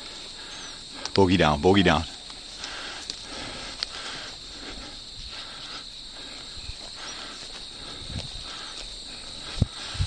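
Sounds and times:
crickets and insects trilling: 0:00.0 - 0:10.0.

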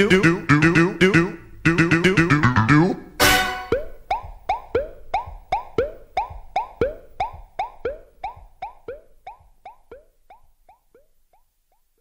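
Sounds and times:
synthesised electronic blips: 0:00.0 - 0:12.0.

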